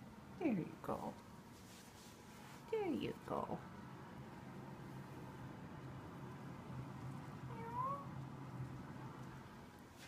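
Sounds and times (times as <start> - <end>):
cat meowing: 7.5 - 8.2.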